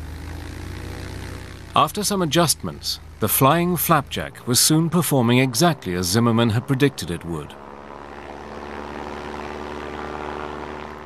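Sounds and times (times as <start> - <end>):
propeller aircraft engine droning: 0.0 - 11.0.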